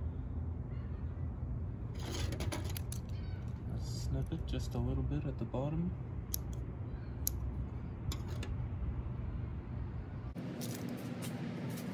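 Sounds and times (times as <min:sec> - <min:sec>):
low outdoor rumble: 0:00.0 - 0:11.9.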